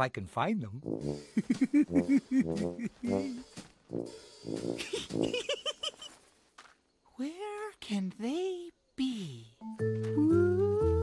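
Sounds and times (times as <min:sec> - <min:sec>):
background music: 0:00.8 - 0:05.7, 0:09.6 - 0:11.0
cartoon voices laughing: 0:01.4 - 0:03.4, 0:04.8 - 0:06.1.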